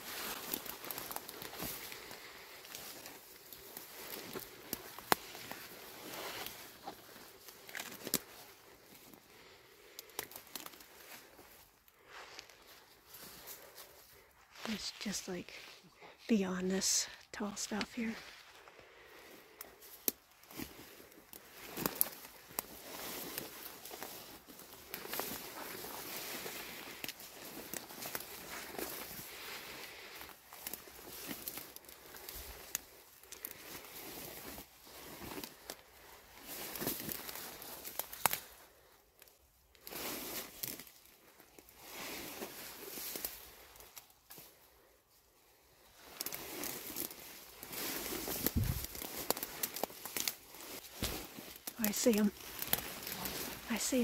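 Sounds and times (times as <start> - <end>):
weeds rustling against clothing: 0.0 - 54.0
footsteps: 47.7 - 54.0.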